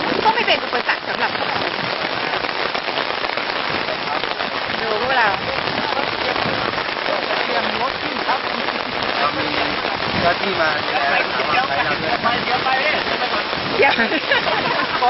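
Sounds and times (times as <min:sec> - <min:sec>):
heavy rain falling: 0:00.0 - 0:15.0.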